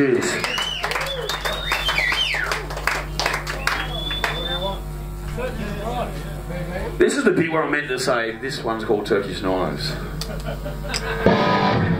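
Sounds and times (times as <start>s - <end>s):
indistinct voices talking: 0.0s - 10.2s
guitar amplifier hum: 0.0s - 11.9s.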